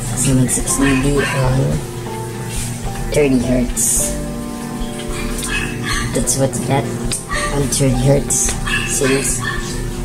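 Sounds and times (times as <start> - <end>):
low sine test tone from woofer: 0.0 - 10.0.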